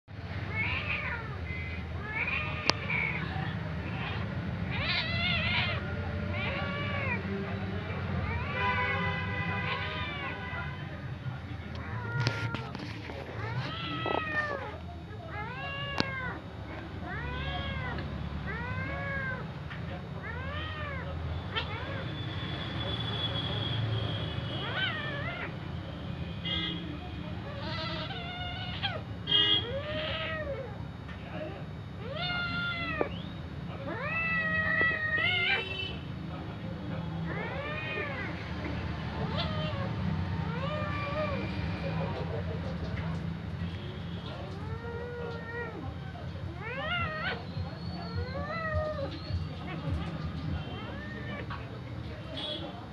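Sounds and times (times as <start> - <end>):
cat meowing: 0.4 - 11.0, 11.7 - 19.6, 20.2 - 22.2, 24.5 - 25.6, 27.4 - 30.8, 31.9 - 36.0, 37.2 - 42.3, 44.2 - 51.7
cats scuffling: 11.8 - 14.9.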